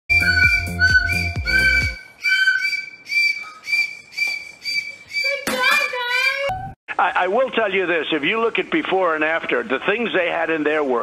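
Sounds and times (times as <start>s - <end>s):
toy whistle tooting: 0.1s - 6.5s.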